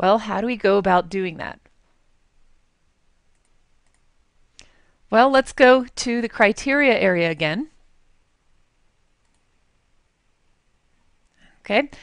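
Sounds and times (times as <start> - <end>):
computer mouse click: 3.3 - 4.7, 9.2 - 9.5.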